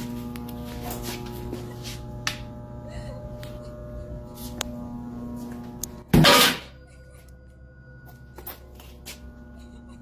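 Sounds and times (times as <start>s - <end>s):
low droning hum: 0.0s - 10.0s.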